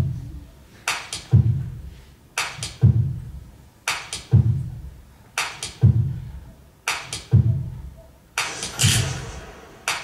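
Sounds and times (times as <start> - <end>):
hissing percussion hit: 8.4 - 10.0.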